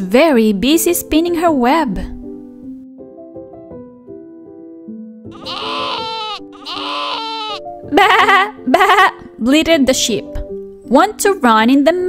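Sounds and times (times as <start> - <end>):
soft children's music: 0.0 - 12.0
sheep bleating: 5.3 - 8.2.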